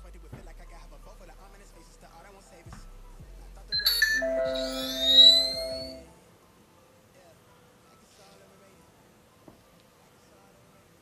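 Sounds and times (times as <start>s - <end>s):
electronic chord with rising tones: 3.8s - 6.0s
short bright ding: 3.8s - 6.0s.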